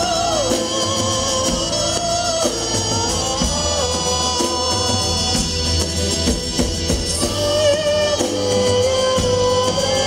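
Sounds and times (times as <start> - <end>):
drum kit: 0.0 - 10.0.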